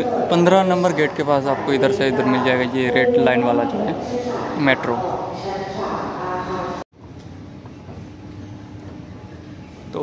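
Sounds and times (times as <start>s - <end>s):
escalator mechanical hum: 0.0s - 10.0s.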